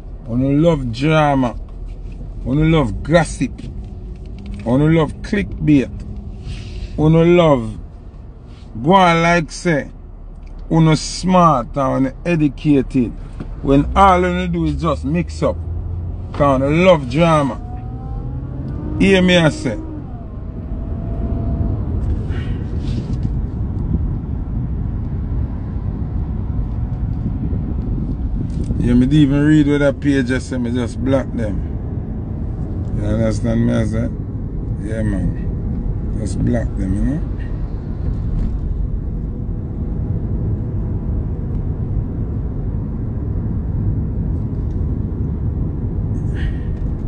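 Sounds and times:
car engine rumble: 0:00.0 - 0:47.0
road noise inside car: 0:00.0 - 0:47.0.

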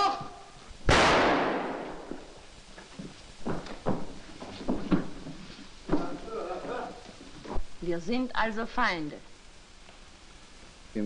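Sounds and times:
pistol shot with ringing tail: 0:00.9 - 0:02.1.

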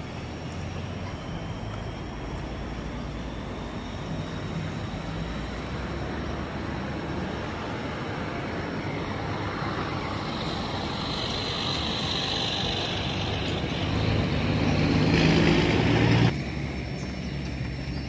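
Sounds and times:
large vehicle engine: 0:00.0 - 0:18.0
traffic noise: 0:00.0 - 0:18.0.

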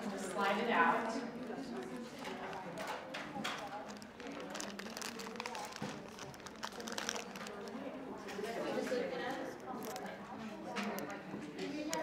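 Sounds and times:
indistinct chatter: 0:00.0 - 0:12.0
paper rustling and clicks: 0:01.7 - 0:08.5, 0:09.3 - 0:11.2.

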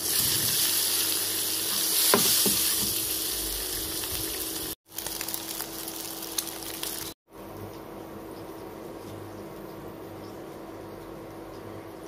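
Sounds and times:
food sizzling in hot oil: 0:00.0 - 0:07.2.

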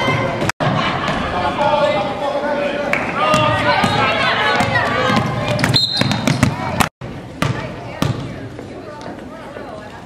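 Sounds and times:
gym crowd shouting: 0:00.0 - 0:05.8
crowd chatter: 0:00.0 - 0:10.0
basketball bouncing on hardwood floor: 0:04.6 - 0:06.7
referee's whistle: 0:05.7 - 0:06.3.

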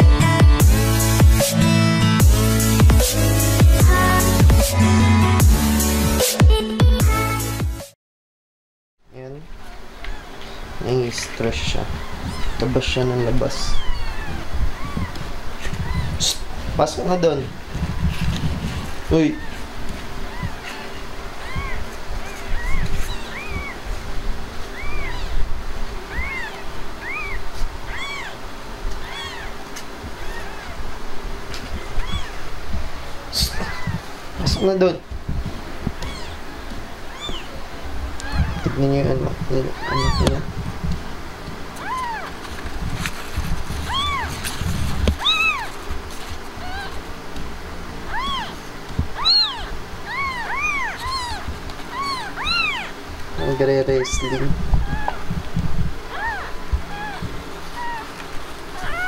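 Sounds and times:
kittens mewing: 0:09.9 - 0:10.8, 0:11.6 - 0:16.7, 0:18.9 - 0:35.0, 0:35.6 - 0:40.5, 0:41.6 - 0:42.8, 0:43.5 - 0:47.0, 0:47.9 - 0:59.0.

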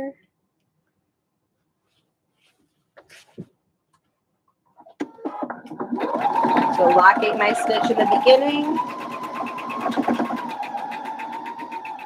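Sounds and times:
sewing machine motor whine: 0:05.1 - 0:12.0
needle ticking rapidly: 0:05.9 - 0:12.0.

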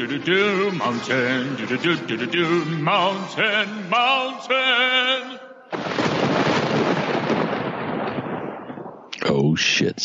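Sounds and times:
thunder rumbling: 0:05.7 - 0:09.4.

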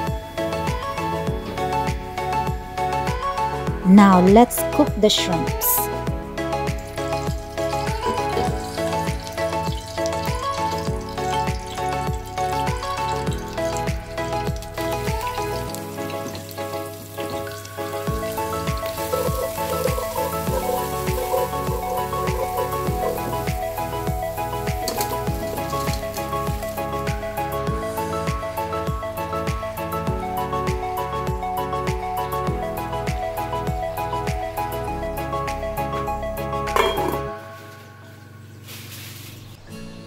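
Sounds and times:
background music with steady beat: 0:00.0 - 0:38.8
garlic sizzling in hot oil: 0:06.8 - 0:27.1.

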